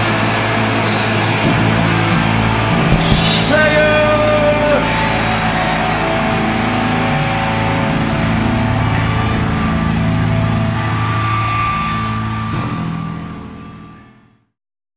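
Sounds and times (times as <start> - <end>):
distorted electric guitar: 0.0 - 14.4.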